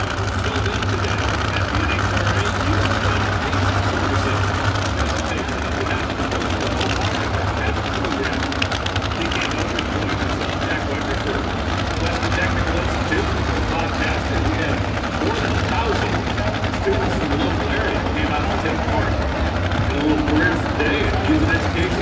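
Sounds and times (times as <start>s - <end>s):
crowd voices: 0.0s - 22.0s
race car engines idling: 0.0s - 22.0s.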